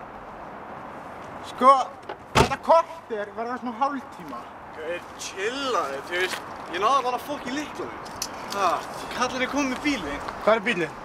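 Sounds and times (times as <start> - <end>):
car door slamming: 2.1 - 2.7.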